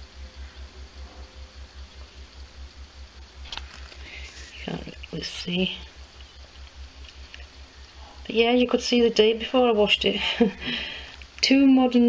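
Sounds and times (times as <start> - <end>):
low pulsing hum: 0.0 - 12.0.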